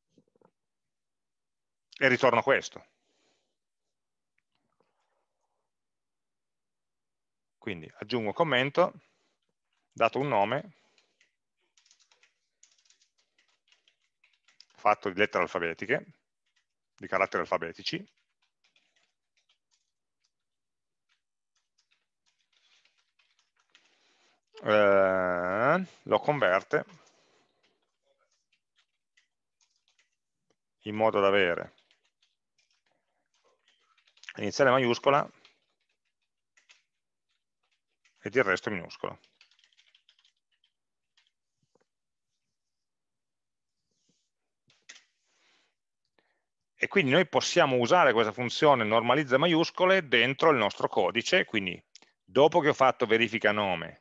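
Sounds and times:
computer keyboard typing: 0:09.1 - 0:41.9.

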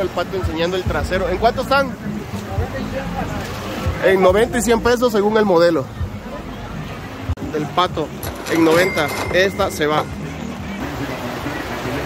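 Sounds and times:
faint murmur of voices: 0:00.0 - 0:12.0.

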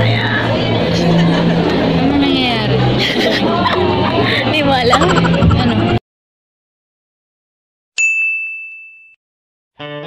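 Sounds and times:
high bell-like ding: 0:08.0 - 0:09.2.

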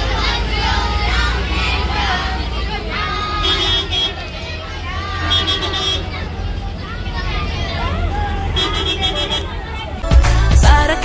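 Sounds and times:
children chattering: 0:00.0 - 0:10.5
bus engine rumble: 0:00.0 - 0:11.0
road noise: 0:00.0 - 0:11.0.

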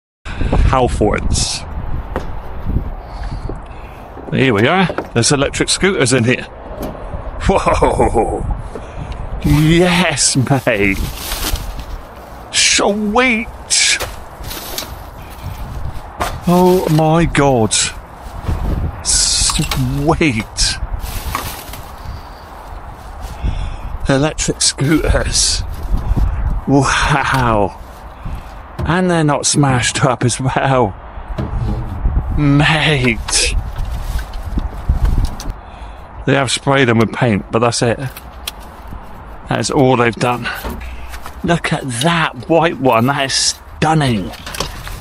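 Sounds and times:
scooters knocking and rattling: 0:03.5 - 0:05.3, 0:13.8 - 0:17.0, 0:44.1 - 0:45.0
low rumble of handling noise: 0:06.5 - 0:26.7, 0:31.3 - 0:35.6
footsteps: 0:08.7 - 0:12.6, 0:13.5 - 0:17.2, 0:17.8 - 0:19.0, 0:19.6 - 0:23.4
rubbish bags rustling: 0:09.4 - 0:26.5, 0:27.3 - 0:28.7, 0:33.0 - 0:35.4, 0:40.2 - 0:41.5, 0:42.7 - 0:45.0.

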